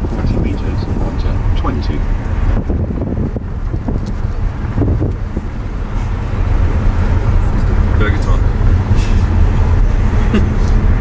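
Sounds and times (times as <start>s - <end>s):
car driving interior rumble: 0.0s - 11.0s.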